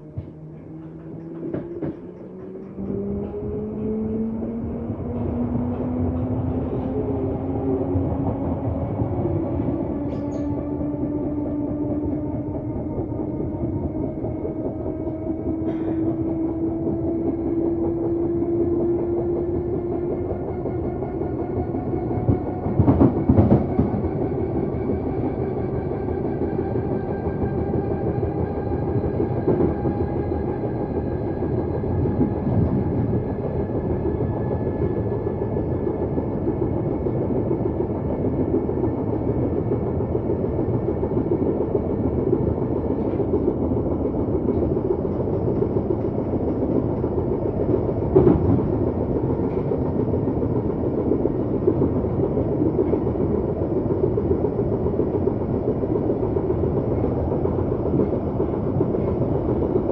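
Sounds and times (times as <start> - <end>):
train wheels rumbling on track: 0.0 - 59.9.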